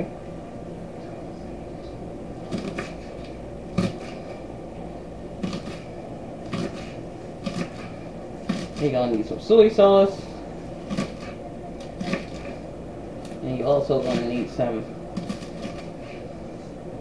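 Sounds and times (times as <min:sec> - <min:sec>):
steady low hum: 0:00.0 - 0:17.0
knife chopping on wooden board: 0:03.8 - 0:04.1, 0:05.4 - 0:05.9, 0:06.5 - 0:08.9, 0:10.9 - 0:12.6, 0:15.2 - 0:15.9.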